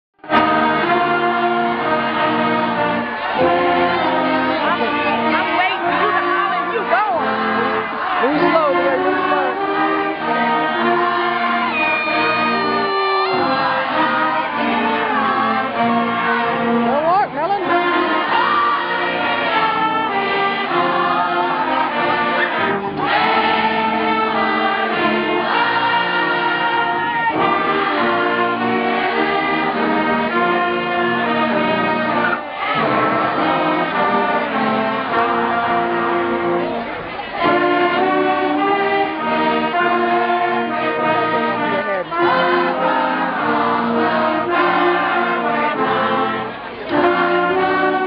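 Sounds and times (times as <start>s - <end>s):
crowd singing along: 0.2s - 48.0s
marching band playing slow chords: 0.2s - 48.0s.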